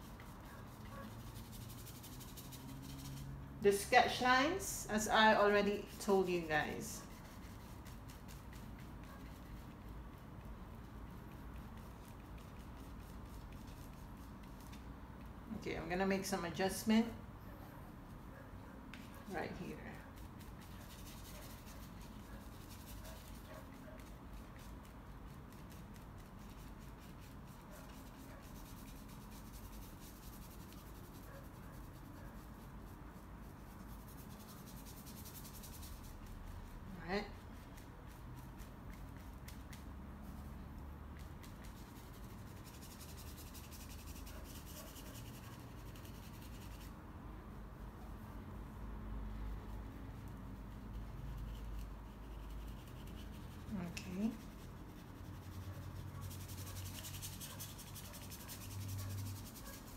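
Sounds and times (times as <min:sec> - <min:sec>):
paintbrush scratching on paper: 0:00.0 - 0:17.2, 0:18.1 - 0:47.0, 0:49.3 - 0:59.9.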